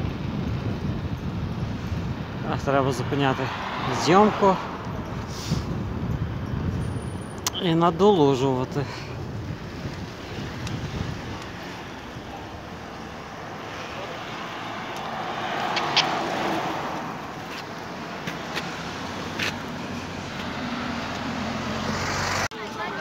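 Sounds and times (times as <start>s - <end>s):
road noise of bicycle riding: 0.0s - 23.0s
car passing: 1.4s - 7.5s, 8.8s - 23.0s.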